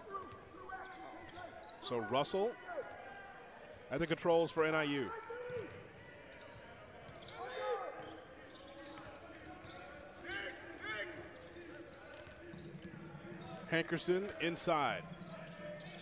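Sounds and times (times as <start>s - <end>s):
sneaker squeaks on floor: 5.4s - 13.6s.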